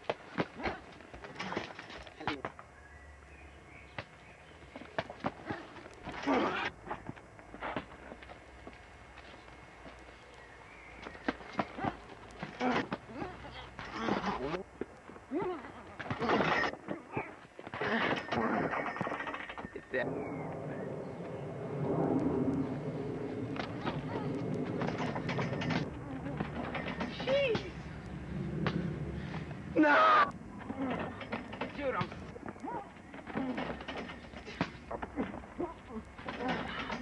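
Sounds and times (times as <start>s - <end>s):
steady background noise: 0.0s - 37.0s
indistinct voices: 11.2s - 37.0s.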